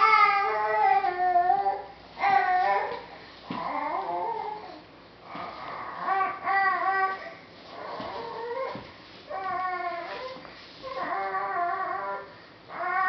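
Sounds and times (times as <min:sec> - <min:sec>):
baby whining: 0:00.0 - 0:13.0.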